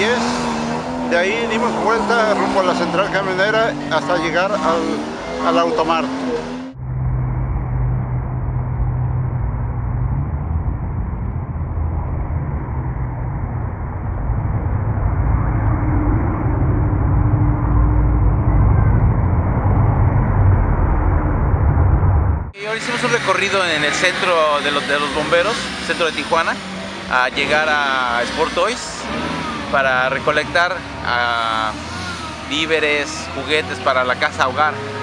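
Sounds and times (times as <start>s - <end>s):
muffled rumble of traffic: 0.0s - 35.0s.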